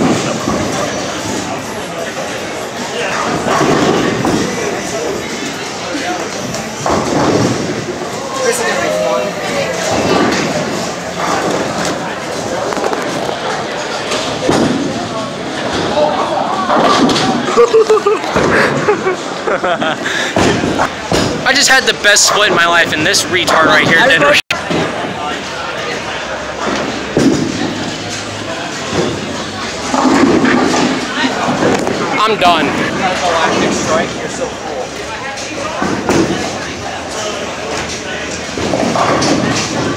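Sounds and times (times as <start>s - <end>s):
bowling balls and pins: 0.0s - 19.4s, 26.3s - 34.1s, 35.4s - 39.9s
voices in echoing hall: 0.0s - 39.9s
bowling ball rolling: 26.5s - 34.2s
bowling pins clattering: 26.6s - 34.0s.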